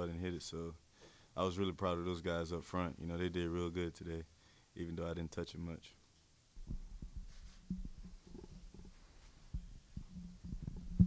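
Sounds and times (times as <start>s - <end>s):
soft thumps: 6.6s - 11.0s.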